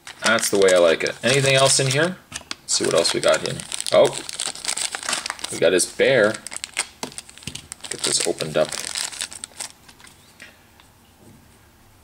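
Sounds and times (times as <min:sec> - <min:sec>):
plastic bag crinkling: 0:00.0 - 0:10.3.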